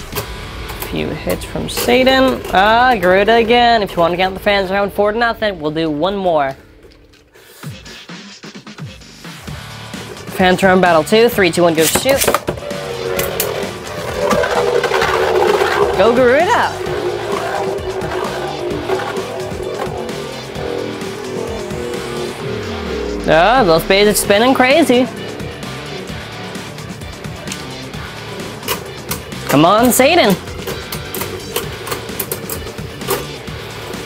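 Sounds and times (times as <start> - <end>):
background music held tone: 0.0 - 34.0
spinning tops scraping: 10.0 - 34.0.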